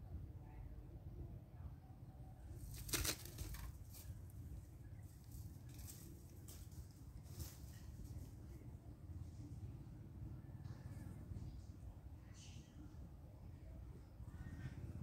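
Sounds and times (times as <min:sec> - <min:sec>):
shrub branches rustling: 0:02.5 - 0:08.6.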